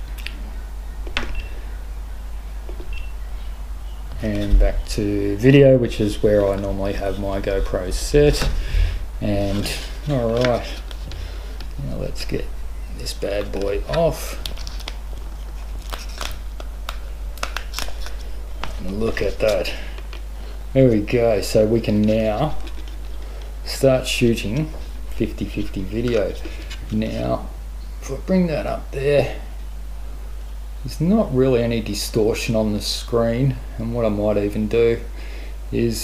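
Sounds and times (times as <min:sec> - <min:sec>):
plastic film peeling and crinkling: 0:13.0 - 0:20.3.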